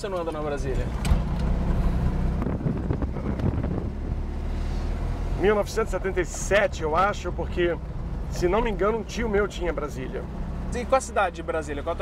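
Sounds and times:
car engine drone: 0:00.0 - 0:12.0
road and wind noise: 0:00.0 - 0:12.0.

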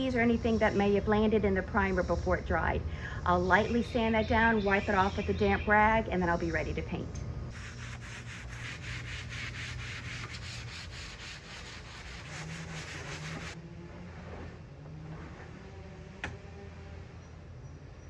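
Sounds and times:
sanding block rasping on wood: 0:07.5 - 0:13.6.

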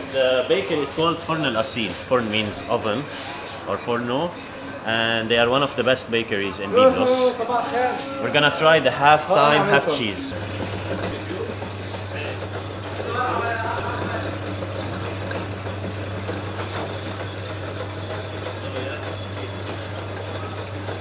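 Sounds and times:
dough sheeter humming: 0:00.0 - 0:21.0.

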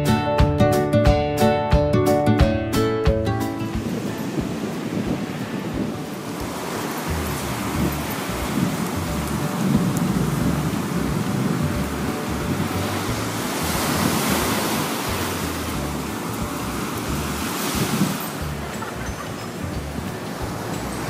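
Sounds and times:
surf breaking on beach: 0:03.4 - 0:21.0
wind buffeting microphone: 0:03.4 - 0:21.0.

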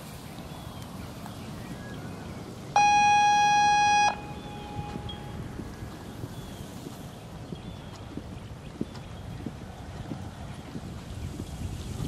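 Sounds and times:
electronic buzzer tone: 0:02.8 - 0:05.4.

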